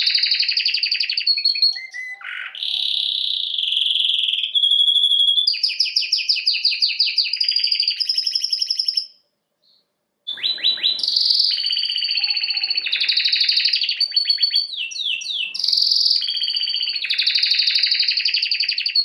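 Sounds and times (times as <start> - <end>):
canary singing trills: 0.0 - 19.0.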